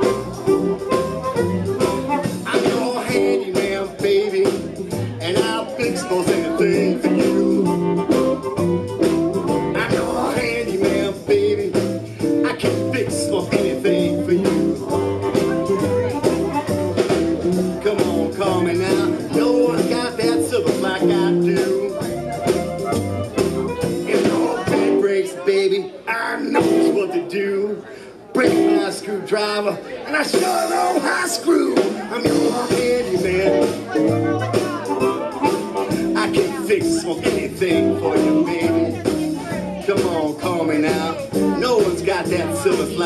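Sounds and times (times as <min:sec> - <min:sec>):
amplified harmonica lead: 0:00.0 - 0:03.5, 0:05.8 - 0:10.7, 0:13.8 - 0:24.6, 0:32.4 - 0:37.1
electric guitar: 0:00.0 - 0:25.2, 0:26.5 - 0:27.2, 0:32.2 - 0:43.0
drums: 0:00.0 - 0:27.5, 0:28.3 - 0:43.0
upright bass: 0:00.0 - 0:27.8, 0:28.4 - 0:29.6, 0:30.2 - 0:43.0.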